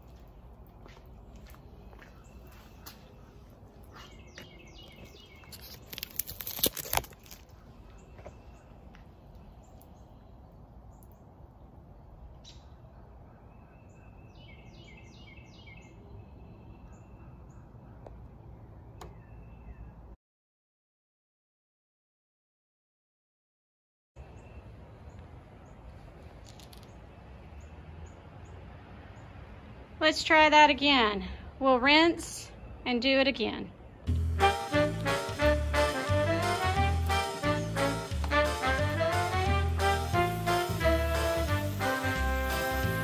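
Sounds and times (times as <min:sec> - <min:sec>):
songbird chirping: 0:00.0 - 0:06.2, 0:07.1 - 0:20.2, 0:24.2 - 0:43.0.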